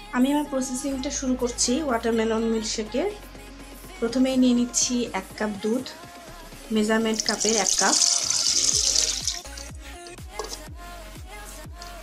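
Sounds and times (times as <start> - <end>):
background music with beat: 2.6 - 12.0
milk pouring into blender jar: 7.2 - 9.7.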